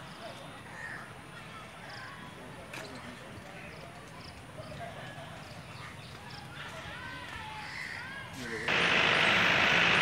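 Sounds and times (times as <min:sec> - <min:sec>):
murmur of distant voices: 0:00.0 - 0:10.0
birds chirping: 0:07.6 - 0:10.0.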